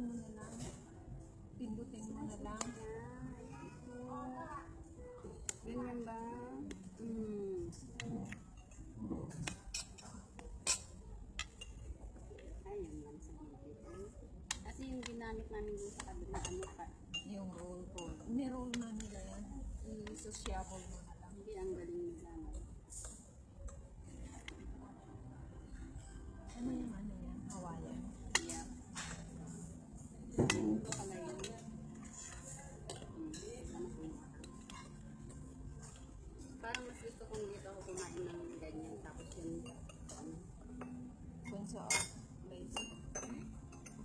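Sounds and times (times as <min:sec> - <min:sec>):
cutlery clinking on plates: 0:08.1 - 0:11.9, 0:30.4 - 0:35.1, 0:39.2 - 0:44.0.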